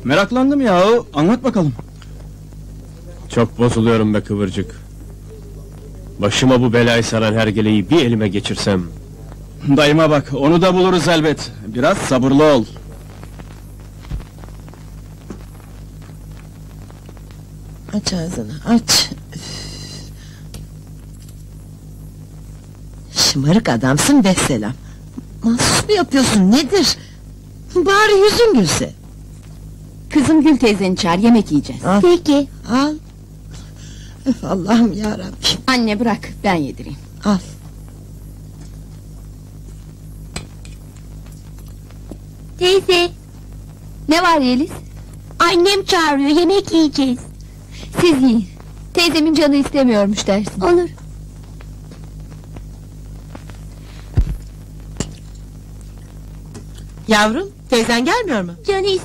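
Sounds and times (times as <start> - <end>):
faint regular throb: 0.0 - 59.0
low pulsing hum: 0.0 - 59.0.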